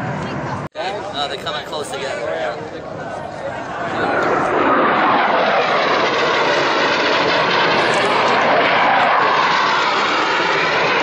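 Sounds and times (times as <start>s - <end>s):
jet engine roar: 0.0s - 11.0s.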